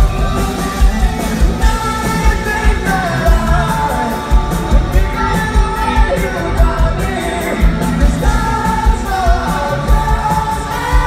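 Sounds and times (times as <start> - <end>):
live pop-rock band: 0.0 - 11.0
person singing: 0.0 - 11.0.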